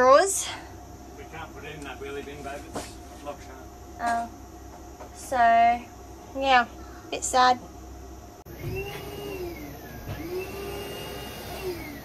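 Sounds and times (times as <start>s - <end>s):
vacuum cleaner motor running: 8.5s - 12.0s.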